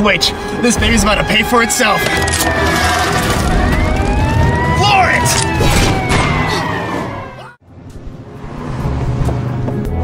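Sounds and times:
siren wailing: 0.8s - 7.6s.

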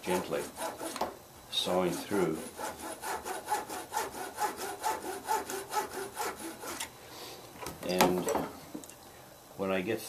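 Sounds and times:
fine-toothed saw cutting: 0.0s - 6.9s.

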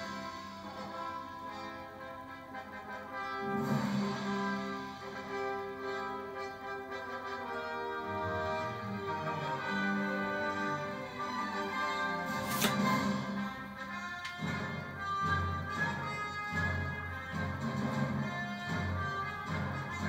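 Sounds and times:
orchestral music with brass: 0.0s - 20.0s.

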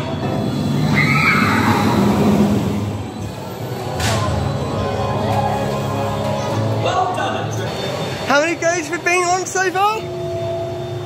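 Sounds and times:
ride music playing: 0.0s - 11.0s
roller coaster train on track: 0.0s - 11.0s
shrill cry: 0.9s - 2.1s.

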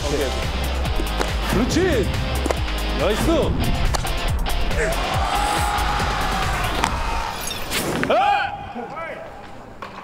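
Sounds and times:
background music: 0.0s - 7.7s
men shouting loudly: 4.7s - 7.4s.

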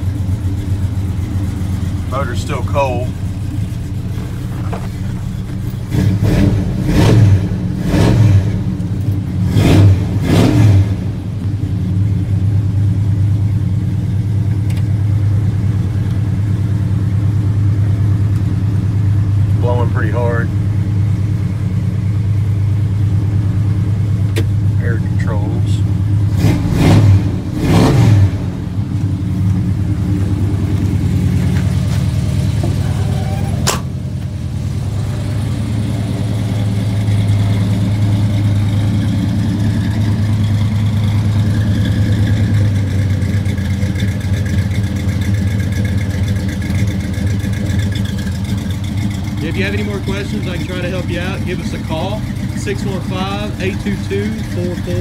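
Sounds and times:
car engine running: 0.0s - 55.0s
engine throttle blips: 0.0s - 55.0s.

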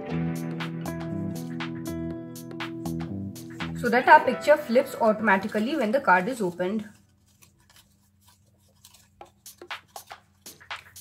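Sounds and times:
cardstock rustling and tapping: 5.5s - 11.0s.

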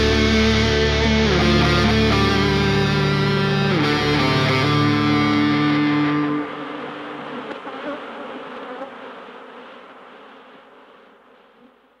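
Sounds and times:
insect swarm buzzing: 4.6s - 12.0s.

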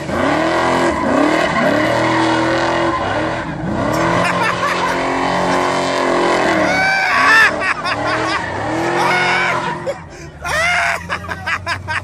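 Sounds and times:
car engine running hard: 0.0s - 12.0s
tyres squealing: 6.4s - 11.4s.

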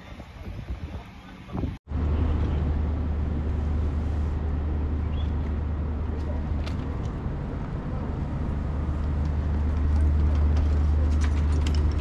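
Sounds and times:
engine running with low drone: 1.1s - 12.0s.

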